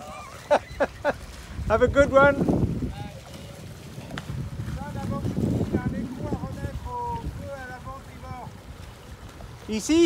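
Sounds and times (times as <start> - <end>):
outboard motor rumbling: 0.0 - 10.0.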